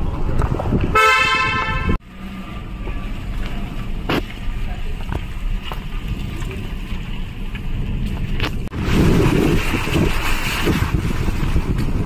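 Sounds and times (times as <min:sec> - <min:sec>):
vehicle horn: 0:00.9 - 0:02.0
car driving rumble from cabin: 0:01.8 - 0:12.0.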